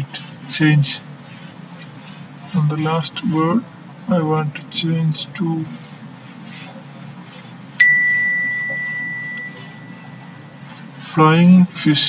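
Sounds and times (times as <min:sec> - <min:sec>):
bell-like ding: 0:07.8 - 0:10.2.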